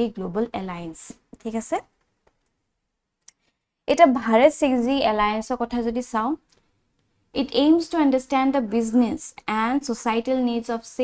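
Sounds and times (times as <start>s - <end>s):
woman speaking: 0.0s - 1.9s, 3.9s - 6.4s, 7.4s - 11.0s.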